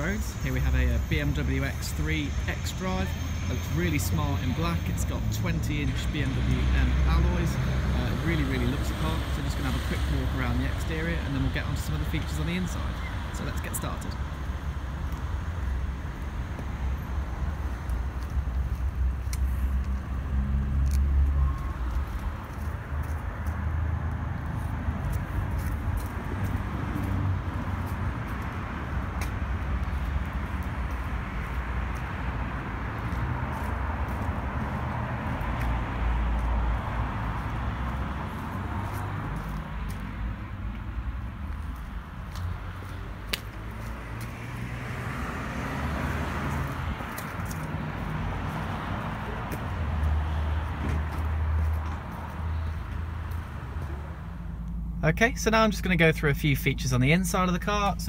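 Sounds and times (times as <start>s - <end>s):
road traffic noise: 0.0s - 58.0s.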